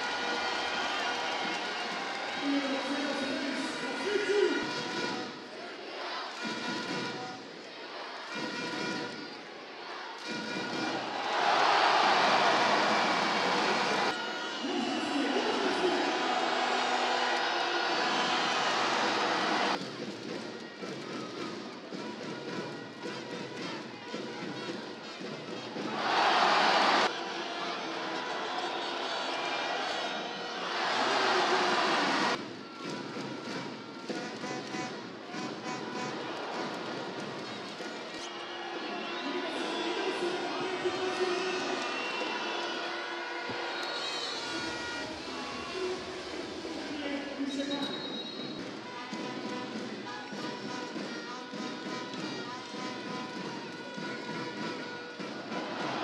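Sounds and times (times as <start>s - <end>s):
crowd cheering and chanting: 0.0s - 56.0s.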